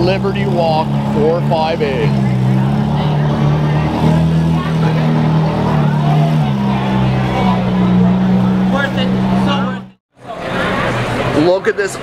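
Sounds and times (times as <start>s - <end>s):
car engine at low revs: 0.0s - 10.0s.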